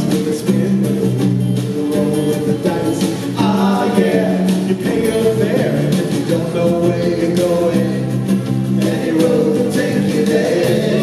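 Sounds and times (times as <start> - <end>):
live rock band playing: 0.0 - 11.0
voices singing: 0.0 - 11.0.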